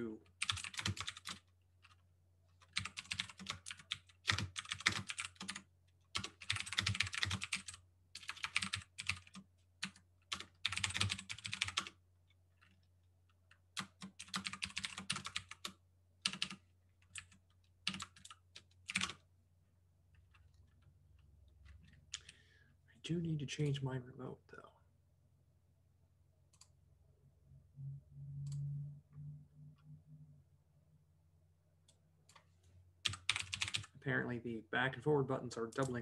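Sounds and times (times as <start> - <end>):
typing on computer keyboard: 0.2 - 2.0, 2.6 - 19.2, 21.5 - 22.4, 33.0 - 33.9.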